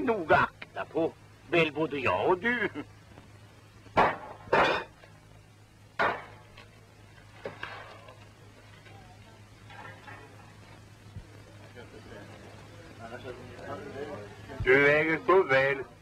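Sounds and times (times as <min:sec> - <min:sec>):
steady low hum: 0:00.0 - 0:16.0
clatter of objects being handled: 0:09.6 - 0:10.9.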